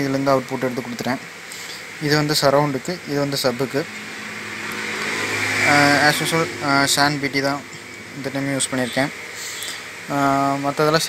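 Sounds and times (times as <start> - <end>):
motor vehicle passing: 3.4 - 10.1.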